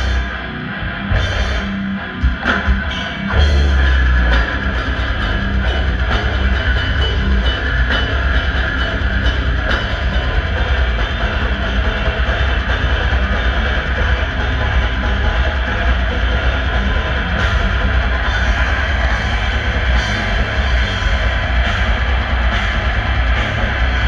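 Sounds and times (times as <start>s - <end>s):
death metal band playing live: 0.0s - 24.0s
distorted electric guitars: 0.0s - 24.0s
drum kit: 0.0s - 24.0s.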